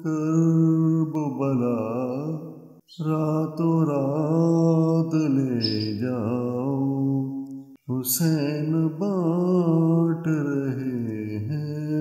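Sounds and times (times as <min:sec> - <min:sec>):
man reciting devotional poem: 0:00.0 - 0:12.0.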